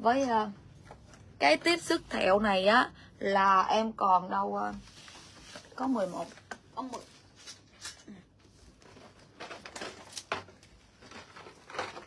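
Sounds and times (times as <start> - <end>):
rustling of packages: 4.8 - 12.0.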